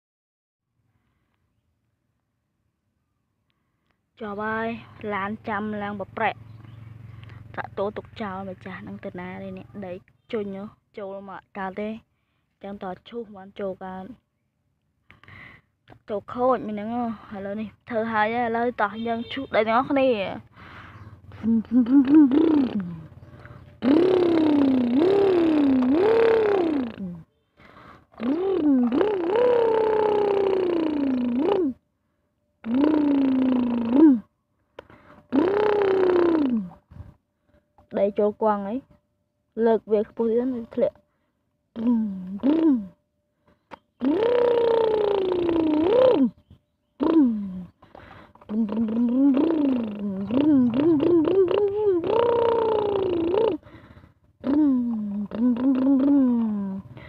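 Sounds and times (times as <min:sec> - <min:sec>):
person imitating engine noises: 0:04.3 - 0:10.8, 0:15.1 - 0:31.8, 0:32.6 - 0:37.2, 0:41.7 - 0:43.0, 0:44.0 - 0:46.4, 0:47.0 - 0:57.0.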